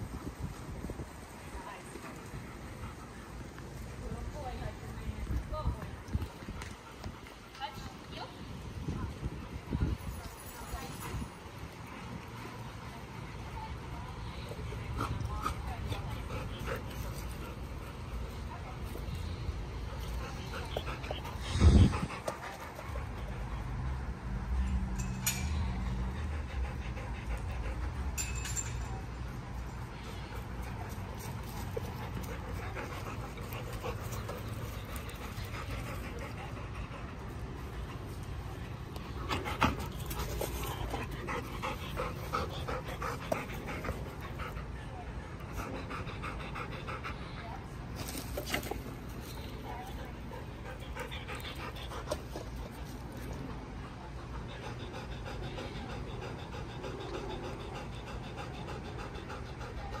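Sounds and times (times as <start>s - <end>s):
dog panting: 1.6s - 3.8s, 11.0s - 24.0s, 25.8s - 28.3s, 29.6s - 60.0s.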